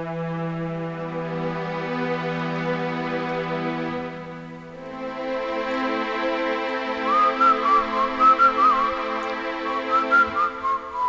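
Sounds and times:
keyboard chords: 0:00.0 - 0:11.0
man whistling a melody: 0:06.9 - 0:11.0.

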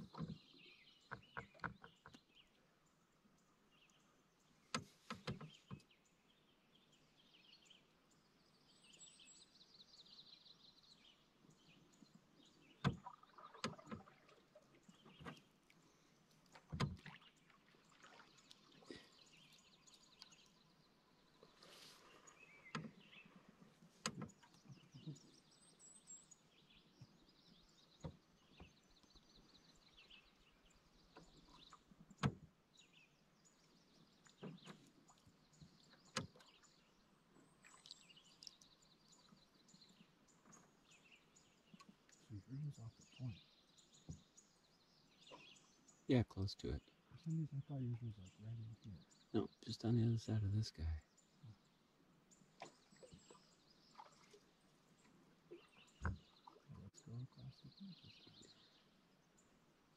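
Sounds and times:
paddle knocking against canoe hull: 0:00.0 - 0:02.3, 0:04.8 - 0:05.9, 0:12.8 - 0:14.3, 0:16.5 - 0:17.2, 0:56.0 - 0:56.6
faint bird chirps: 0:00.0 - 0:59.9.

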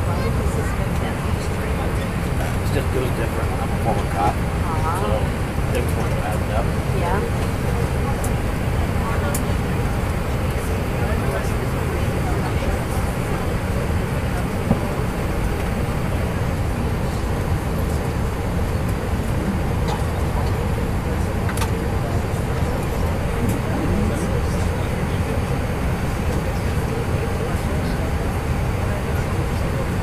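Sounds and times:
airliner cabin engine rumble: 0:00.0 - 0:30.0
murmuring of passengers: 0:00.0 - 0:30.0.

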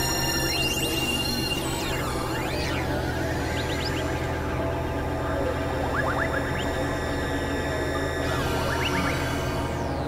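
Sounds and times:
electronic synthesizer drone: 0:00.0 - 0:10.0.

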